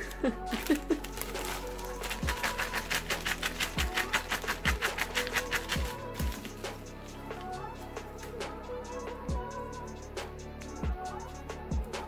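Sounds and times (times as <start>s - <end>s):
fast ticking beat: 1.4s - 6.9s.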